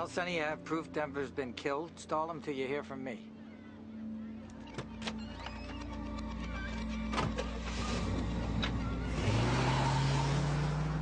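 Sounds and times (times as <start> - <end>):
road noise: 5.8 - 11.0
car engine revving and accelerating: 7.6 - 11.0.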